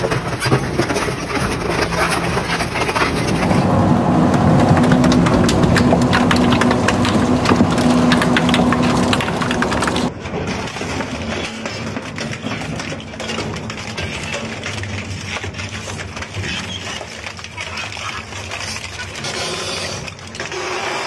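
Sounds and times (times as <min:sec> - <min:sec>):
shredder crushing metal and plastic: 0:00.0 - 0:21.0
machine hum: 0:02.2 - 0:10.2.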